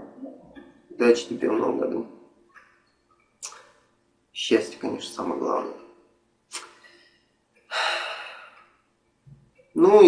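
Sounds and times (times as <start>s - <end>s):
man breathing: 6.6s - 8.8s.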